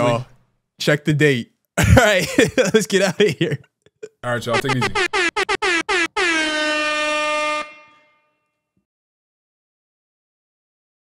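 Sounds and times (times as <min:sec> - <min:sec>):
air horn blasts: 0:04.6 - 0:08.5.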